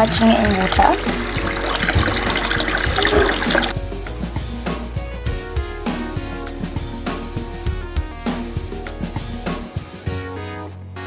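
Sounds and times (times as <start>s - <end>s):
tap water splashing over hands: 0.0s - 3.7s
background music: 0.0s - 11.0s.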